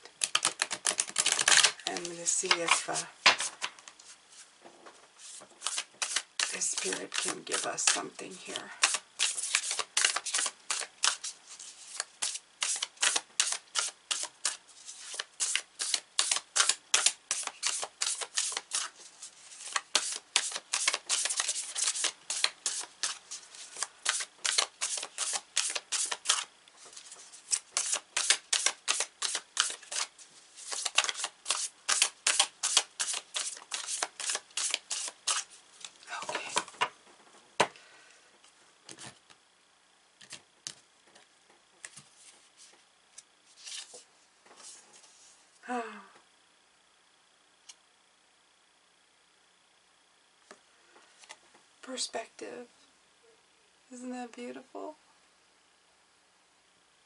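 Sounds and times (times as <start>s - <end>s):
cards being shuffled: 0.1s - 4.4s, 5.2s - 36.9s, 40.2s - 45.0s.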